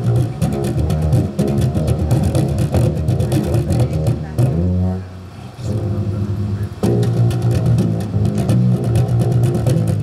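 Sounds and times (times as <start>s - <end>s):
electric bass guitar: 0.0s - 10.0s
live band playing: 0.0s - 10.0s.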